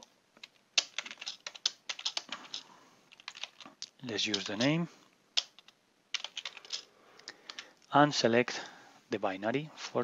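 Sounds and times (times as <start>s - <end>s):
typing on computer keyboard: 0.4s - 4.8s, 5.4s - 7.7s.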